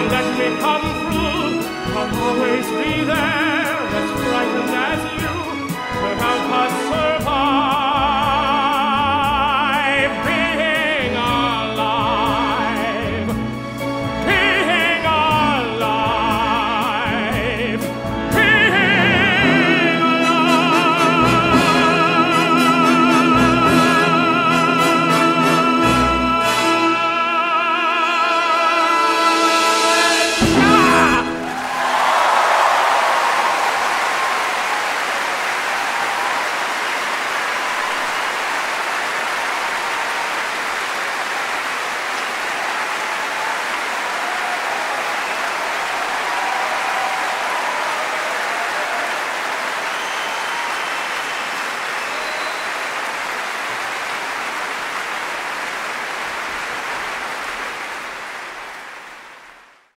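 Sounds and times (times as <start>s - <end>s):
audience applause: 30.4s - 60.0s.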